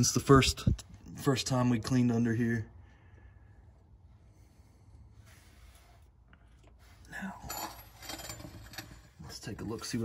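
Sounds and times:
short knocks and clinks: 7.4s - 9.2s.

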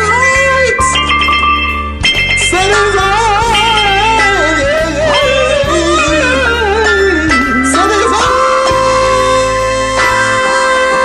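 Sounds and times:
wordless vocal with vibrato: 0.0s - 1.1s, 2.4s - 11.0s
backing track chords and bass: 0.0s - 11.0s.

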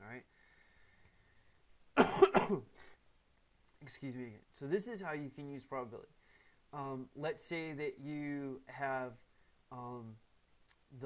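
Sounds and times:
person coughing: 2.0s - 3.0s.

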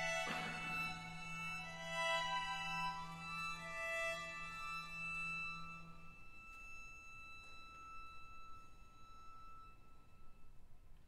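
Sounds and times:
string ensemble high note: 0.0s - 10.7s.

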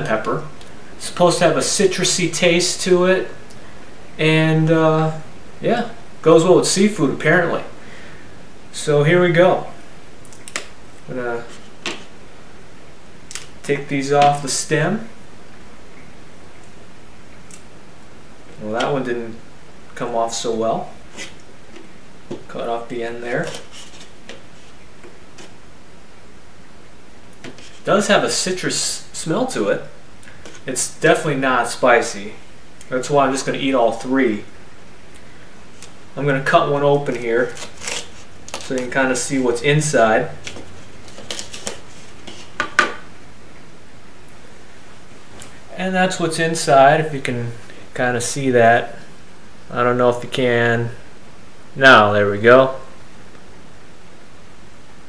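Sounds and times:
room tone hiss: 0.0s - 55.0s.

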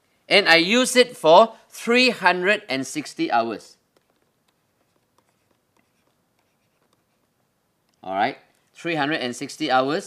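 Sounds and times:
pen scraping in handwriting: 3.9s - 7.3s.

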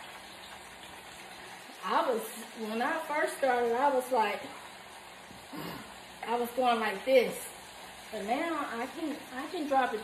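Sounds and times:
food sizzling in hot oil: 0.0s - 10.0s
woman's voice: 1.8s - 4.6s, 6.2s - 10.0s.

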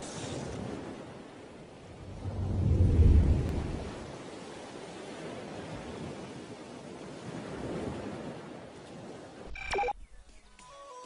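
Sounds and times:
water noise: 0.0s - 10.0s
wind: 0.0s - 11.0s
deep rumble: 2.0s - 4.0s.

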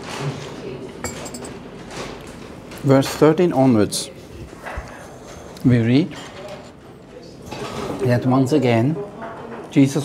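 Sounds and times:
ceramic cup clinking: 1.0s - 1.6s.

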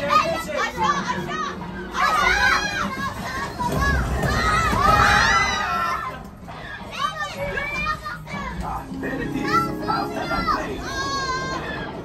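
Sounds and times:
children calling out: 0.7s - 8.6s, 9.4s - 12.0s.

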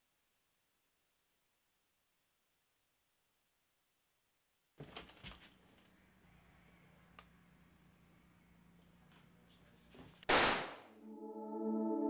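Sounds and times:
gunshot: 10.3s - 10.9s.

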